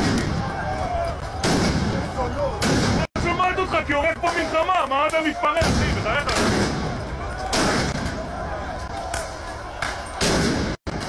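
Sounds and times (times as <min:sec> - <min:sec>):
explosions with echoing tail: 0:00.0 - 0:03.6, 0:05.6 - 0:08.5, 0:10.2 - 0:11.0
crowd shouting: 0:00.0 - 0:10.8.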